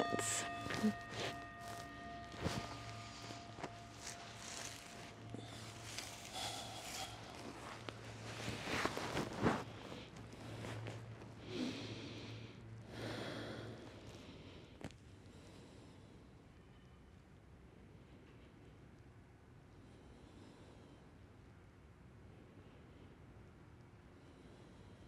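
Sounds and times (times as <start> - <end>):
fabric rustling on grass: 0.2 - 11.2
person breathing slowly: 0.2 - 16.7.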